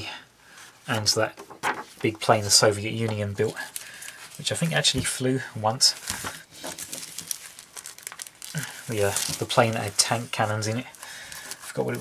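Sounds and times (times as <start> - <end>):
plastic bag crinkling: 3.3 - 12.0.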